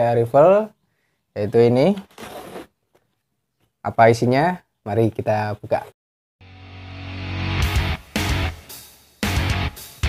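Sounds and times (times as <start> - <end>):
cardboard box scraping on wood: 2.0 - 2.8.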